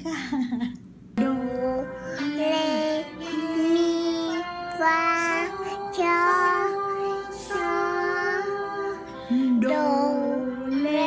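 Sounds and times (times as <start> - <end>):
girl singing slow melody: 1.2 - 11.0.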